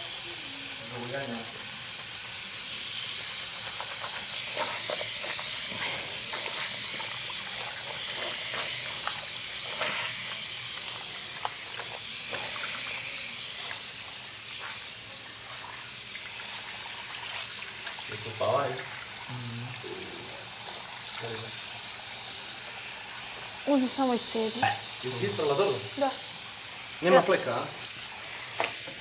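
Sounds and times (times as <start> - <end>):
splashes of washing: 0.9 - 25.6
tap running into washbasin: 28.4 - 29.0.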